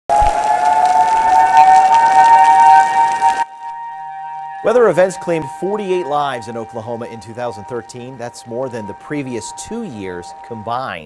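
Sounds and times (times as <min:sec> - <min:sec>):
two-note storm warning siren: 0:00.1 - 0:11.0.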